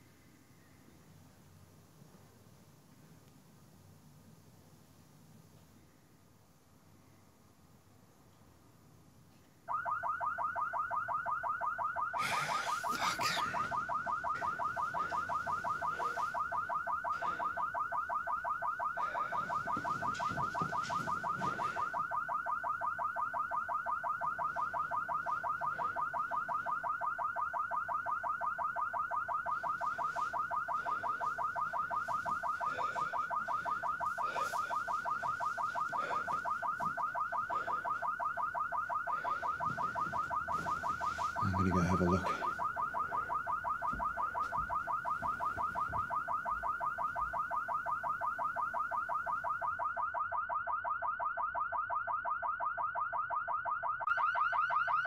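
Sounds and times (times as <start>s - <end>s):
car alarm warbling: 9.7s - 55.0s.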